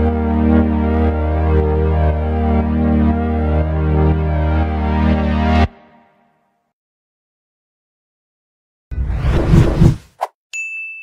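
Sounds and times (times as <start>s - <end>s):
bright high ding: 10.5s - 11.0s.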